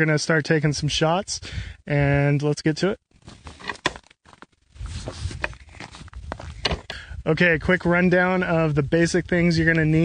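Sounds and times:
footsteps: 0:03.1 - 0:07.0.

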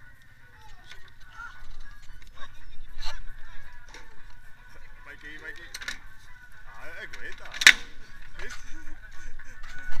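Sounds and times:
people talking: 0:00.5 - 0:10.0.

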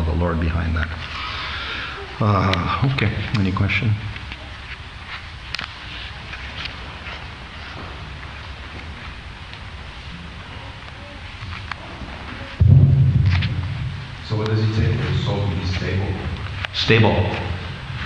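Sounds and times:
steady low rumble: 0:01.9 - 0:18.0
sudden low-pitched sound: 0:12.6 - 0:15.2.

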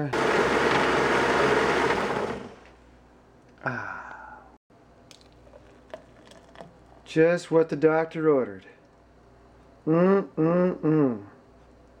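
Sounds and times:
blender running and winding down: 0:00.0 - 0:02.7.

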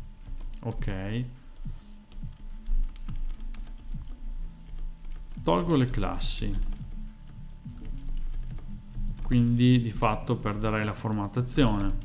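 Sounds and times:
quiet background music: 0:00.0 - 0:12.0
computer keyboard typing: 0:00.2 - 0:00.9, 0:01.5 - 0:12.0.

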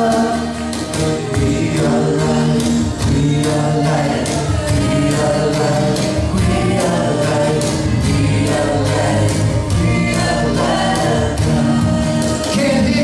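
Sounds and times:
acoustic guitars strummed: 0:00.0 - 0:13.0
woman and man singing: 0:00.0 - 0:13.0.

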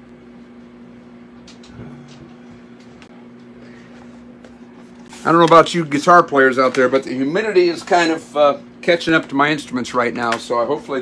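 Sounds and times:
amplifier electrical hum: 0:00.0 - 0:11.0.

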